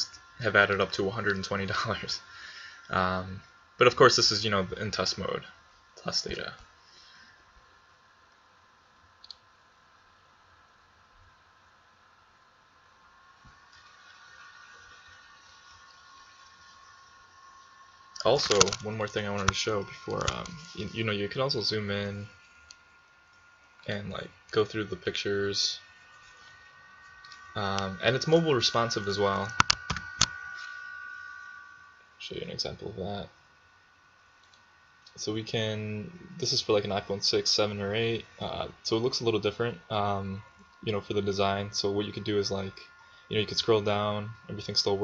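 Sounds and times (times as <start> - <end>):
faint two-note whine: 0.0 - 7.3, 14.6 - 45.0
electrical hum: 0.0 - 45.0.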